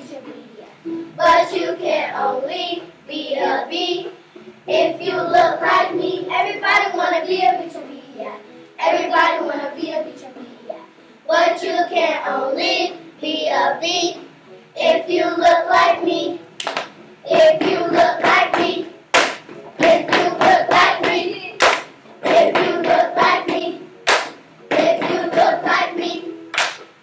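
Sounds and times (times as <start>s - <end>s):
children singing together: 1.0s - 8.2s, 8.8s - 16.5s, 17.2s - 26.5s
sharp hand clap: 16.6s - 17.0s, 18.2s - 25.1s, 26.5s - 27.0s.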